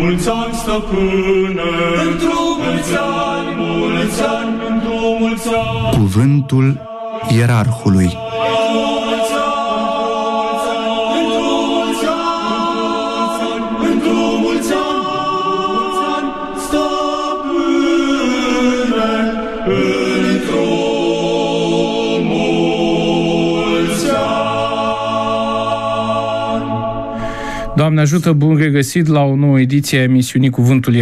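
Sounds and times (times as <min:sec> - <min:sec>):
church choir singing chords: 0:00.0 - 0:28.6.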